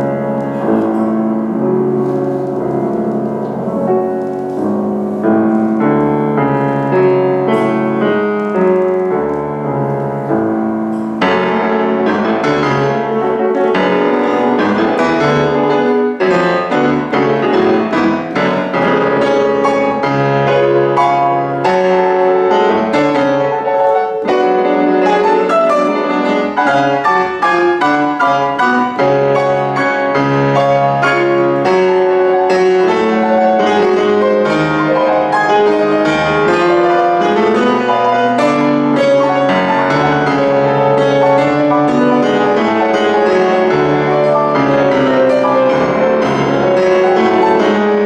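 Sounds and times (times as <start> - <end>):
grand piano classical music: 0.0 - 48.0.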